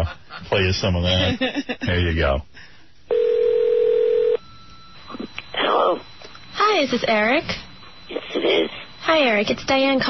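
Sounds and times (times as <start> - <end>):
telephone ringing tone: 3.1 - 6.7
faint high steady tone: 3.1 - 10.0.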